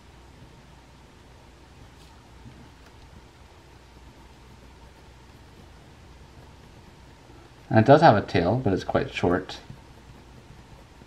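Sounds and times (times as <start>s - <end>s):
room tone hiss: 0.0s - 11.0s
pencil scratching on paper: 1.9s - 11.0s.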